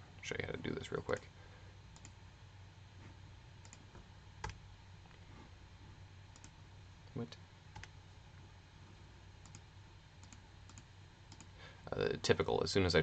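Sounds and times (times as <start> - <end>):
low electrical hum: 0.0 - 13.0
computer mouse clicks: 1.9 - 2.2, 3.6 - 4.6, 6.3 - 6.6, 9.4 - 11.5.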